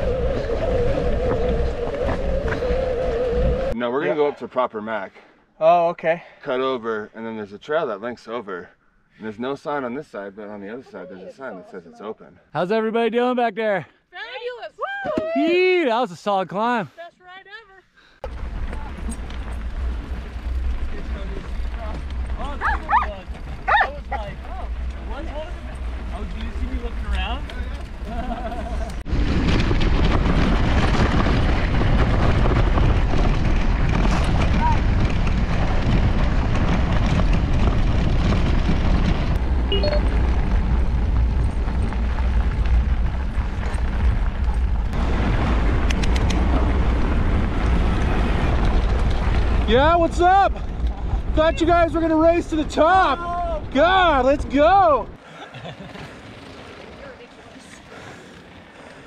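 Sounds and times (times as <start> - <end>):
wind rumbling on microphone: 0.0 - 3.8, 18.2 - 55.2
wheels rolling on dirt road: 0.0 - 4.3, 18.2 - 59.0.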